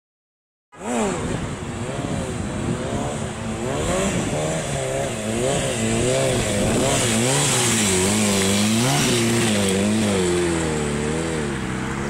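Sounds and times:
motorcycle engine revving: 0.8 - 12.0.

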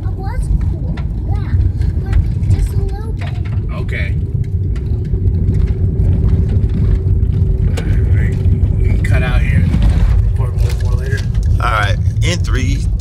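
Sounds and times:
car road rumble and engine: 0.0 - 13.0
faint steady hum: 0.0 - 13.0.

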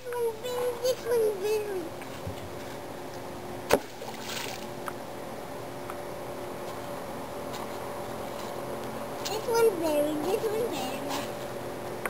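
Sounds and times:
water splash: 3.7 - 4.7.

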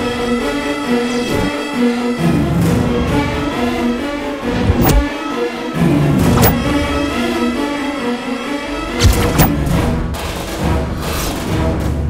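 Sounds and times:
swoosh sound effect: 4.6 - 5.1.

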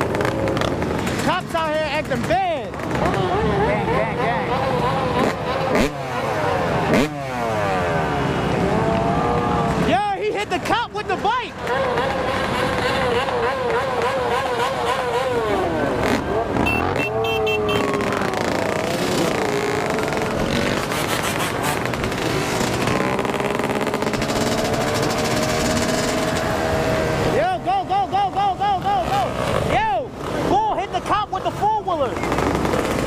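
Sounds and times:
dirt bike engines revving: 0.0 - 33.0
engine throttle blips: 11.6 - 27.2.

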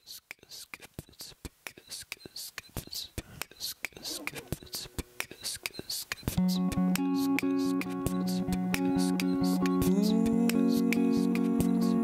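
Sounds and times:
beatboxing into microphone: 0.0 - 12.0.

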